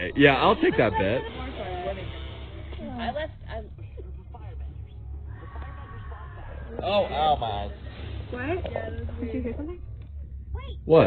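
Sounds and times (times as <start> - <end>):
distant high-pitched scream: 5.1 - 6.8.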